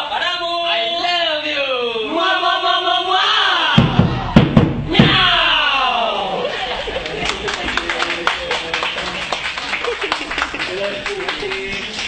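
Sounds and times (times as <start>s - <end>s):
hand-struck frame drums: 3.8s - 5.7s.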